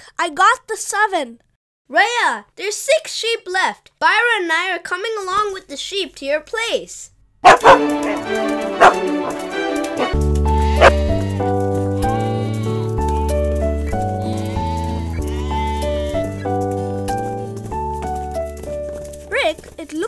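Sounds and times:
light music with bass line: 7.5 - 19.2
cartoon sheep bleating: 10.5 - 12.9, 14.2 - 16.4.

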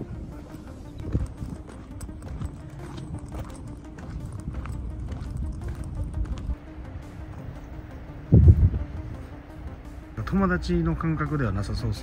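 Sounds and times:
footsteps on pavement: 0.0 - 9.8
background music: 0.0 - 12.0.

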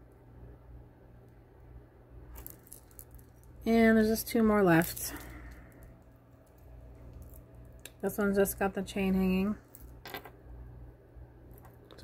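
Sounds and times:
low room hum: 0.0 - 12.0
small wire rings clicking: 2.3 - 3.6.

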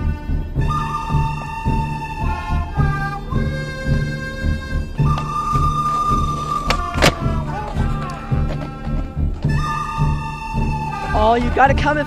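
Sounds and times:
background music with low beat: 0.0 - 12.0.

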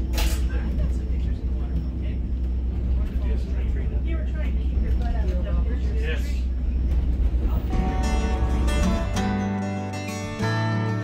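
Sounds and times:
passengers talking: 0.0 - 11.0
train car rumbling on track: 0.0 - 11.0.

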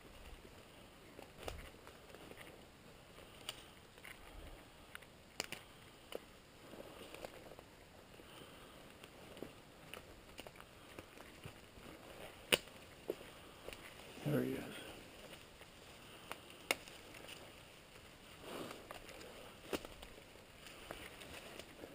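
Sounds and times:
twigs snapping: 1.2 - 2.5, 3.3 - 4.2, 4.9 - 6.3, 9.8 - 14.0, 15.2 - 21.8.

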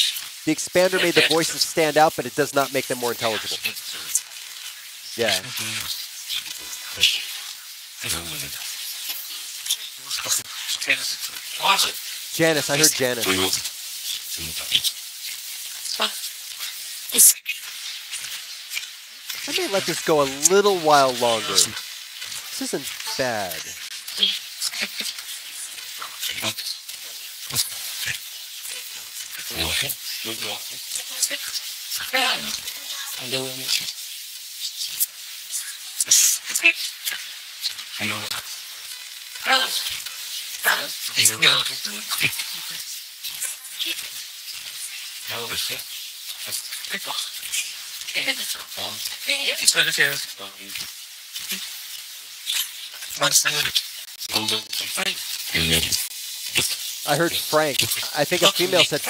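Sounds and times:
radio static hiss: 0.0 - 4.2, 5.2 - 5.9, 11.6 - 14.9, 19.4 - 21.8, 22.4 - 23.8, 53.2 - 59.0
chopped voice fragments: 0.5 - 3.7, 5.2 - 5.8, 12.4 - 13.6, 19.5 - 21.8, 22.6 - 23.8, 56.6 - 59.0.

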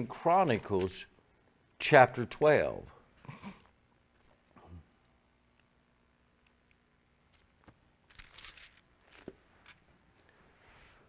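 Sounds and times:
faint low vocal murmur: 4.6 - 5.0.

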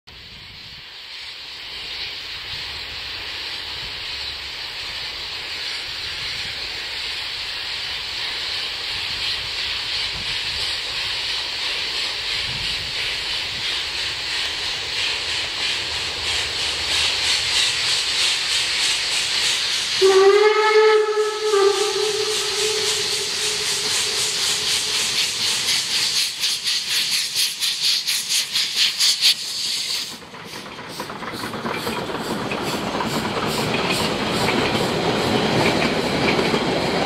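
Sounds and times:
steam hissing: 0.1 - 37.0
steam locomotive exhaust chuff: 0.2 - 37.0.

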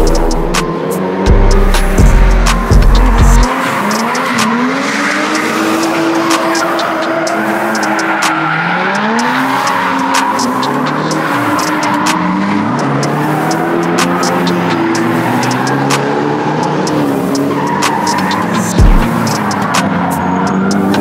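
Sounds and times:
car engines revving: 0.0 - 21.0
tyres squealing: 2.6 - 21.0.

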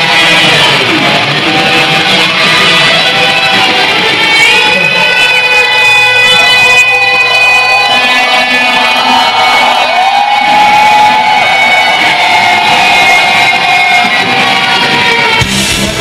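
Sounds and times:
electric guitar note bending: 0.0 - 16.0
heavy metal band playing live: 0.0 - 16.0.

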